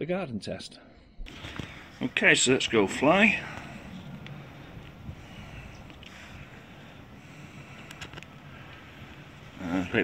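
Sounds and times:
wind rumble on microphone: 2.8s - 9.5s
faint clicks: 7.7s - 9.2s.

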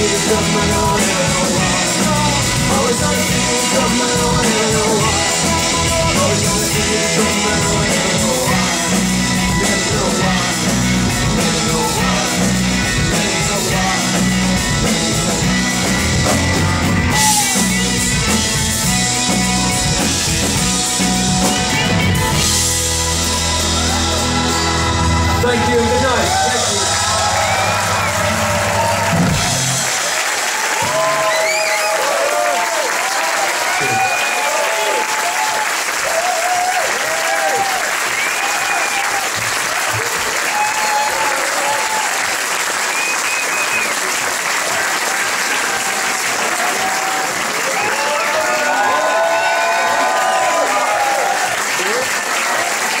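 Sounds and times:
audience applauding and cheering: 0.0s - 53.0s
shouts and whistles: 17.1s - 17.6s, 30.8s - 32.7s, 33.8s - 39.3s, 40.4s - 42.1s, 42.8s - 44.0s.

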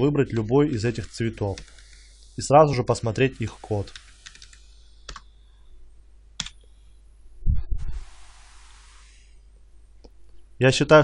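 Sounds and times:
computer keyboard keystrokes: 3.8s - 5.3s, 6.4s - 6.6s.

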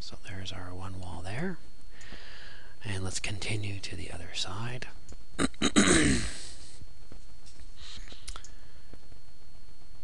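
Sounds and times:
man coughing: 5.4s - 6.5s.

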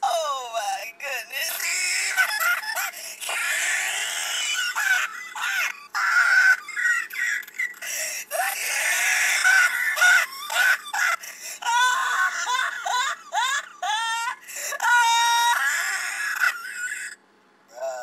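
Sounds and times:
pitched-up wailing laughter: 1.4s - 17.2s.

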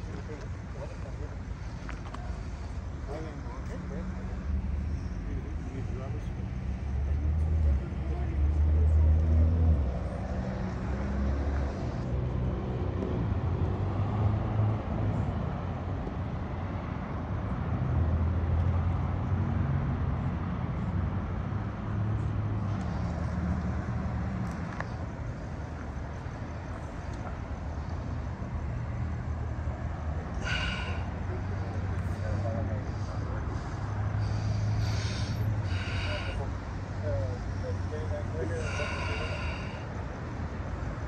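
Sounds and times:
passing road traffic: 0.0s - 41.0s
vehicle engines idling: 0.0s - 41.0s
faint indistinct voices: 30.2s - 41.0s.

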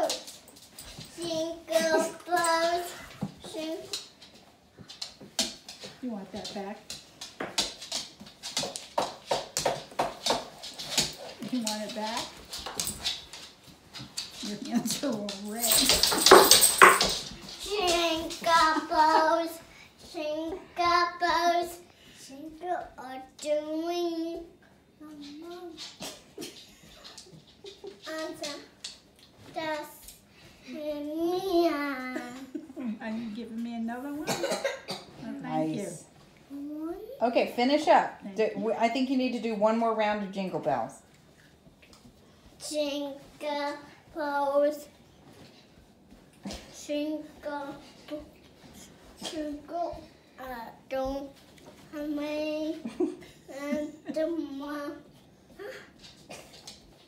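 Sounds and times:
person coughing: 34.2s - 35.2s.

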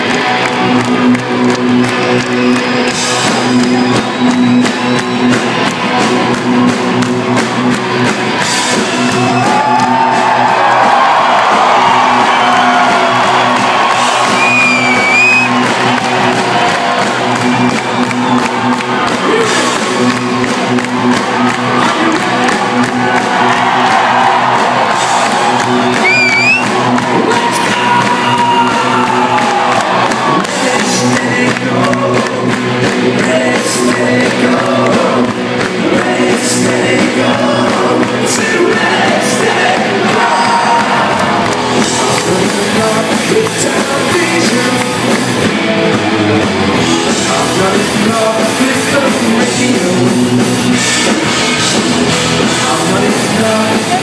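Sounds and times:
fans cheering and whooping: 0.0s - 54.0s
live rock band playing: 0.0s - 54.0s.

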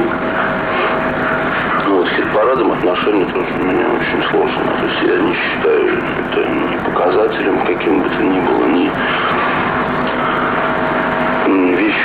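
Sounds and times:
rushing background noise: 0.0s - 12.0s
man speaking: 1.8s - 9.0s, 11.4s - 12.0s.

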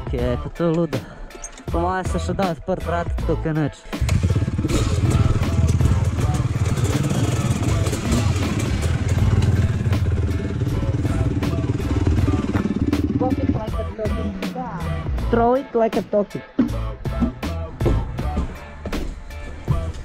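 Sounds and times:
dirt bike engine running: 4.0s - 14.3s.

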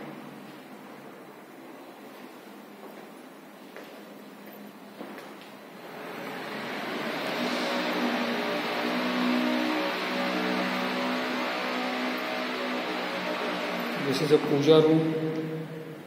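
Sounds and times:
engine droning: 5.8s - 16.0s.

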